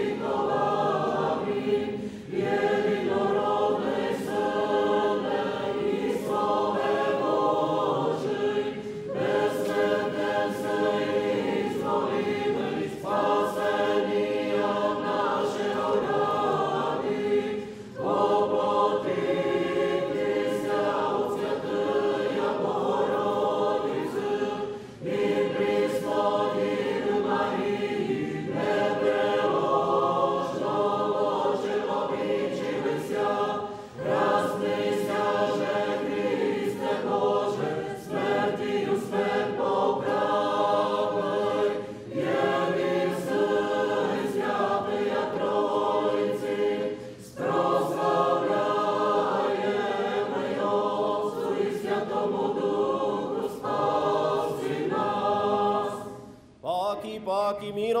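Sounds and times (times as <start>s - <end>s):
choir chanting unaccompanied: 0.0s - 57.6s.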